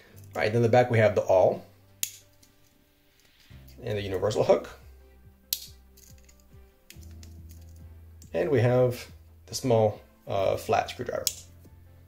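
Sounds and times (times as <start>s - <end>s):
soft background music: 0.0s - 12.0s
pocket knife clicking shut: 5.5s - 7.6s.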